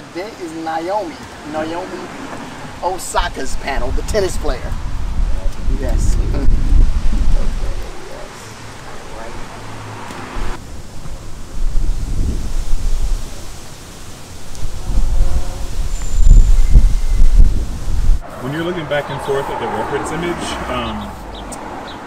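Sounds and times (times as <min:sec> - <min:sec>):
steady background hiss: 0:00.0 - 0:06.0, 0:07.0 - 0:21.1
wind buffeting microphone: 0:01.3 - 0:18.3.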